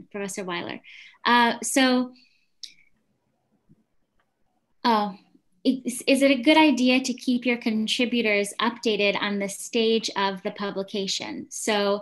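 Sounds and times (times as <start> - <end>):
woman's voice: 0.0 - 2.2, 4.9 - 12.0.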